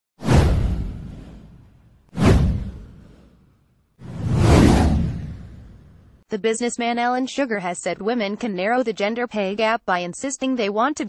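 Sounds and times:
deep whoosh sound effects: 0:00.2 - 0:06.2.

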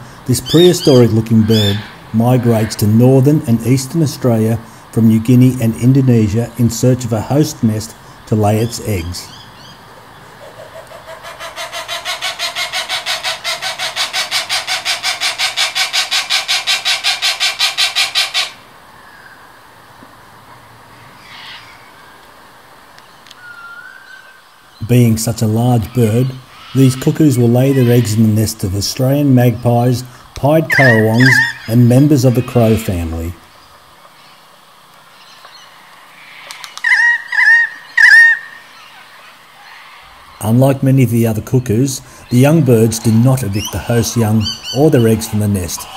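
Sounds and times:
faint bird calls: 0:00.0 - 0:03.2, 0:08.8 - 0:19.6, 0:21.0 - 0:22.3, 0:23.0 - 0:24.9, 0:25.5 - 0:40.6, 0:41.5 - 0:45.9
cuckoo calling rapidly: 0:00.0 - 0:09.8, 0:10.4 - 0:18.6, 0:23.4 - 0:33.4, 0:36.3 - 0:39.4, 0:40.0 - 0:45.9.

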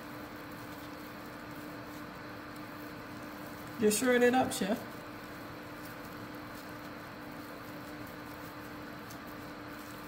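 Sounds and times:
steady low hum: 0:00.0 - 0:10.0
person speaking: 0:03.8 - 0:04.9.

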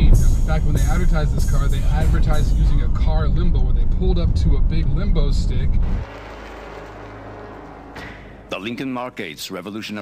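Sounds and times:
low hum: 0:00.0 - 0:08.6.

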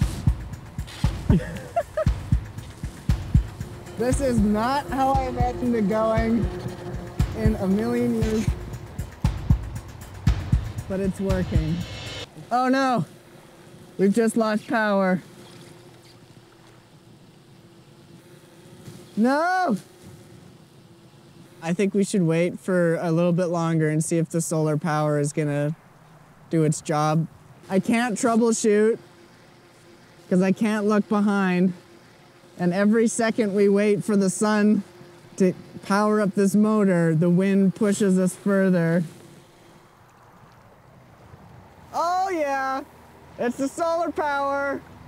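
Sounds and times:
thin steady hum: 0:00.0 - 0:45.0
wind and water hiss: 0:00.0 - 0:45.0.

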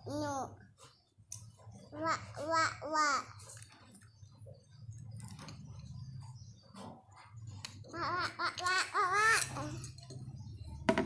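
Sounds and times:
child giggling and babbling: 0:00.0 - 0:00.6, 0:01.9 - 0:03.4, 0:07.9 - 0:10.0.

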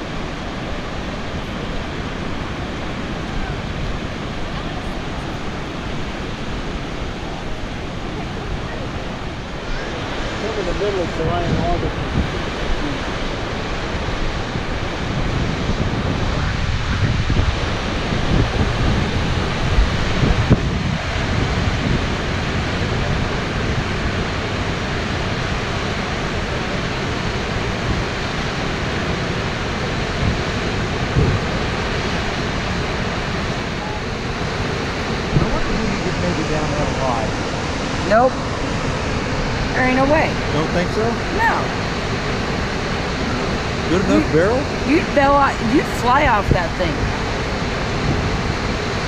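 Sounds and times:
waterfall rushing: 0:00.0 - 0:49.0
wind buffeting microphone: 0:00.0 - 0:49.0.

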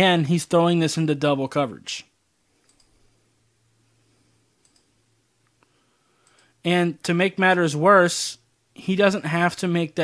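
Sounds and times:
faint computer clicks: 0:02.6 - 0:03.0, 0:04.6 - 0:06.6.

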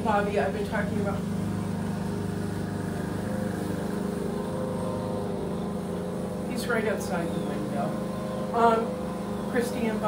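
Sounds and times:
lawn mower engine running: 0:00.0 - 0:10.0.

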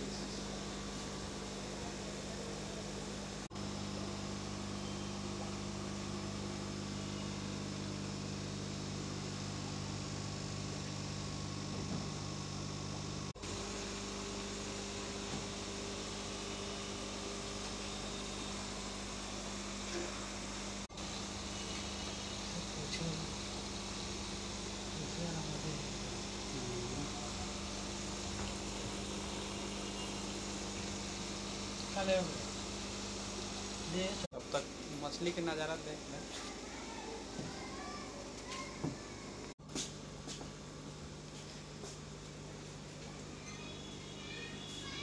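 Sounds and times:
aquarium air pump hum: 0:00.0 - 0:45.0.

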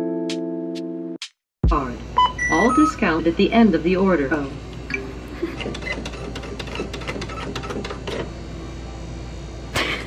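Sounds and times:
receipt printer clicking: 0:05.4 - 0:08.3.

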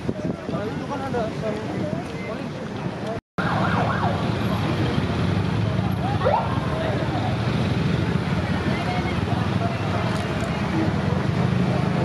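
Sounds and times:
motorcycle engines in traffic: 0:00.0 - 0:12.0.

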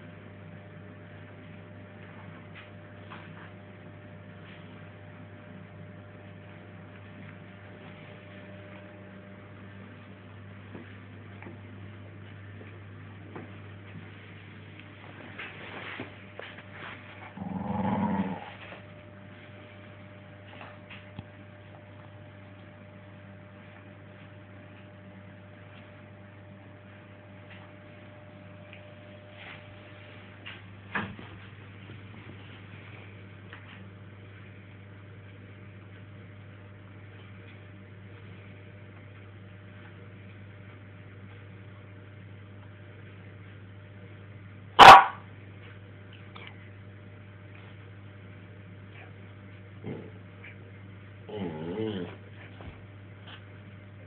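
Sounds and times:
dog growling: 0:17.3 - 0:18.8, 0:49.8 - 0:50.2, 0:51.3 - 0:52.2
dog barking: 0:44.8 - 0:45.3.

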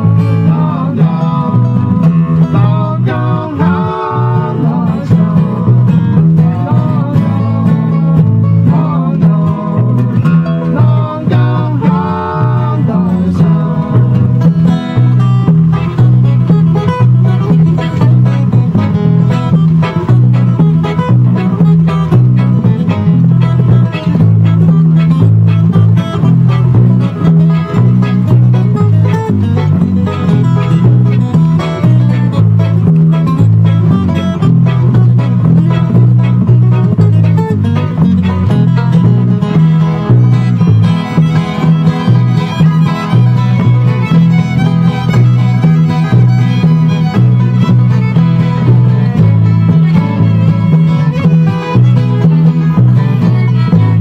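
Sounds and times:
acoustic guitar flatpicking: 0:00.0 - 0:54.0
banjo: 0:00.0 - 0:54.0
fiddle melody: 0:00.0 - 0:54.0
upright bass: 0:00.0 - 0:54.0.

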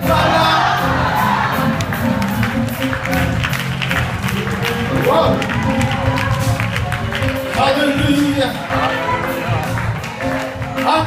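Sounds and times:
congregation cheering and shouting: 0:00.0 - 0:11.0.

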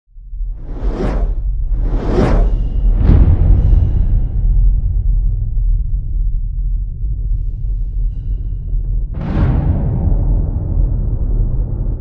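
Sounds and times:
deep low rumble: 0:00.1 - 0:12.0
cinematic whoosh: 0:00.5 - 0:05.2.

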